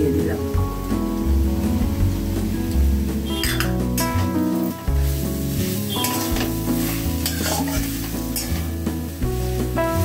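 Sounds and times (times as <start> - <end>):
background music: 0.0 - 10.0
food sizzling in a pan: 0.0 - 10.0
metal spatula scraping a pan: 5.7 - 8.8.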